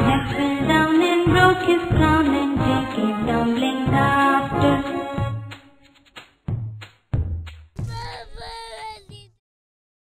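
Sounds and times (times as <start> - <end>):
cartoon girl crying: 7.8 - 9.4.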